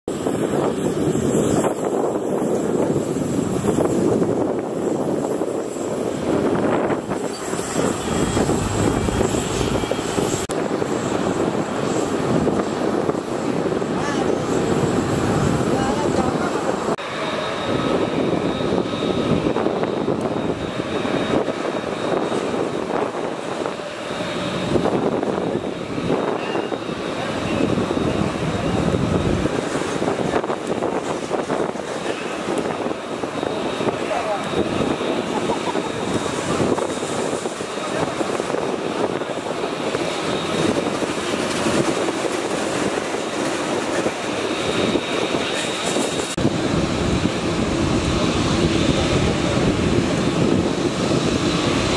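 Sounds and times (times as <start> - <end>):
jet engines rushing: 0.1 - 51.9.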